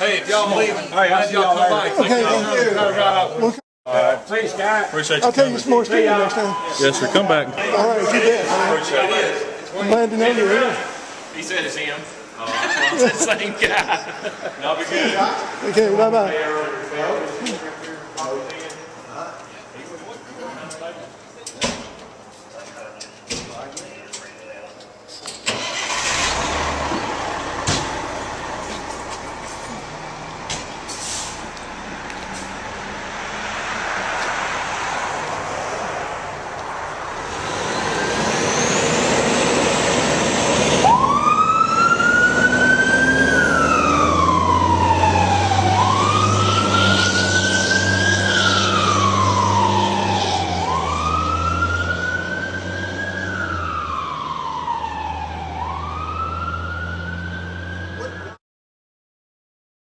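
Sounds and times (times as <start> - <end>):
diesel engine pulling away: 25.4 - 58.4
fire engine siren wailing: 25.6 - 58.4.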